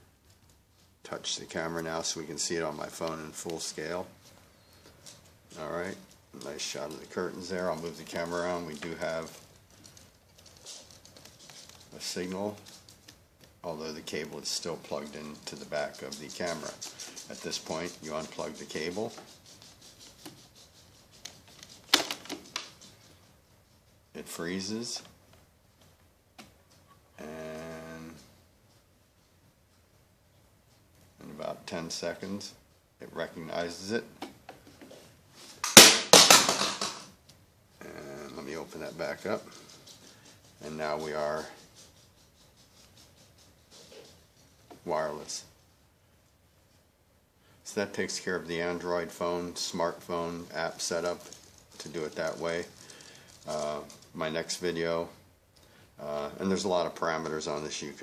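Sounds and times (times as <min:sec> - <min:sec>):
rustling handling noise: 0:00.0 - 0:27.2, 0:28.1 - 0:58.0.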